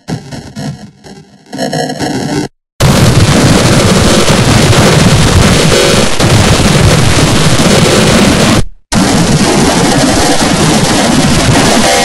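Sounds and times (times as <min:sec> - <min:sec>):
distorted glitchy audio: 0:00.0 - 0:12.0
harsh static-like noise blast: 0:00.0 - 0:12.0.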